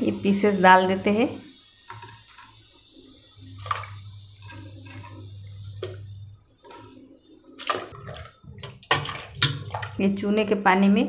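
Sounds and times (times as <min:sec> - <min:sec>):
pieces splashing into water: 0:03.6 - 0:04.6, 0:07.6 - 0:10.0.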